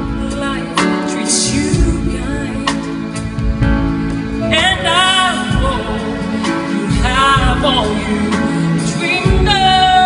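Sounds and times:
woman singing: 0.0s - 3.6s, 4.4s - 10.0s
live band playing slow ballad: 0.0s - 10.0s.

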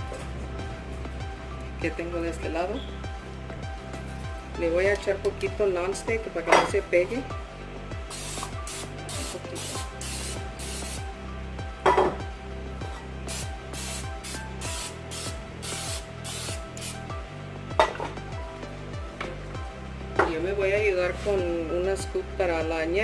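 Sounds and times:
background music: 0.0s - 23.0s
cooking spray hissing: 8.1s - 11.1s, 13.2s - 17.1s.

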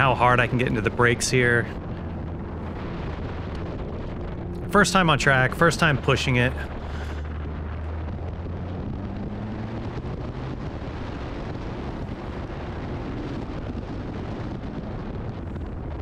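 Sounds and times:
car engine running at speed: 0.0s - 16.0s
wind rushing over microphone: 0.0s - 16.0s.

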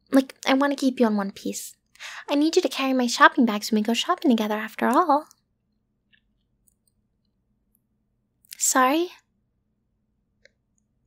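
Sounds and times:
woman speaking: 0.1s - 5.3s, 8.5s - 9.2s.

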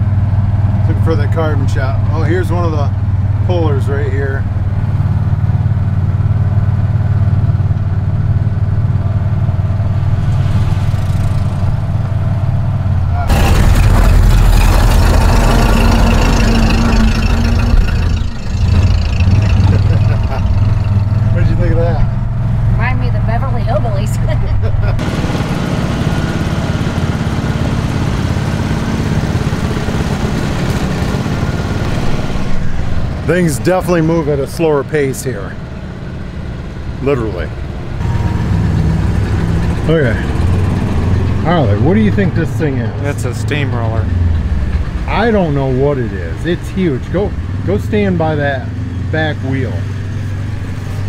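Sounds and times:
louder lower engine sound: 0.0s - 51.0s
utility cart engine running: 0.0s - 51.0s.

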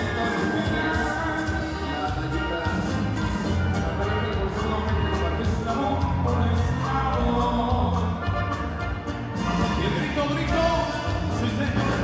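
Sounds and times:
live dance band music: 0.0s - 12.0s
steady bass line: 0.0s - 12.0s.

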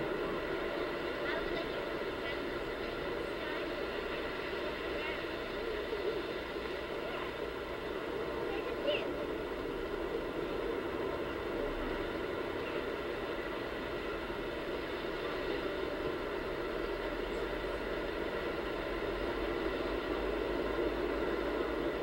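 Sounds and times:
faint voices calling: 0.0s - 22.0s
surf: 0.0s - 22.0s.

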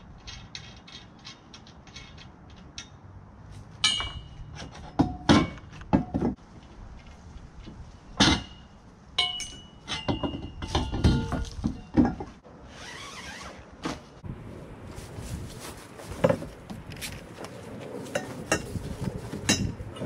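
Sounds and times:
metal poles clanking: 0.0s - 6.4s, 8.1s - 12.4s, 18.1s - 20.0s.

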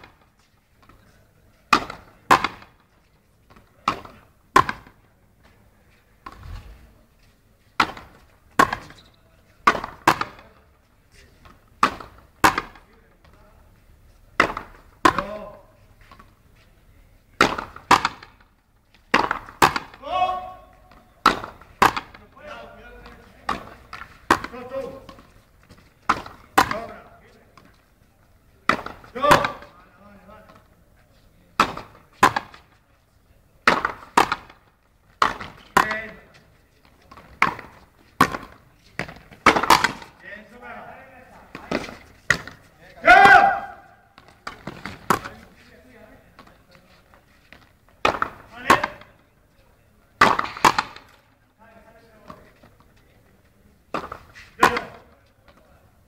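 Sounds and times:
ball cracking off rackets and wall: 33.6s - 36.2s, 37.1s - 40.1s, 47.5s - 49.1s, 50.2s - 51.2s, 53.9s - 55.1s.

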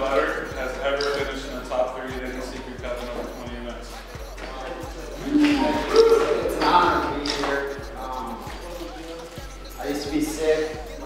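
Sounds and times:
murmur of crowd voices: 0.0s - 11.0s
music with deep bass beat: 0.0s - 11.0s.

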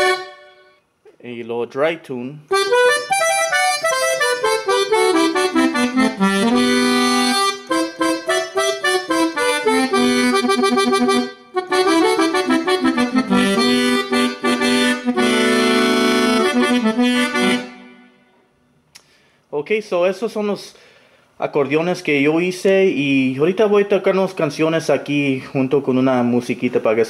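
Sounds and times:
accordion playing: 0.0s - 0.8s, 2.5s - 18.4s.

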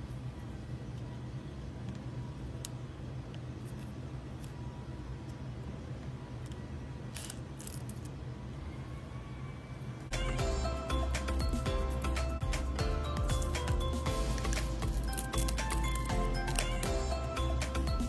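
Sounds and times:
low background hum: 0.0s - 18.0s.

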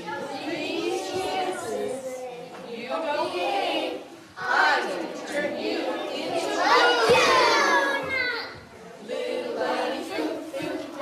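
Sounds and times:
young children singing in unison: 0.0s - 11.0s.

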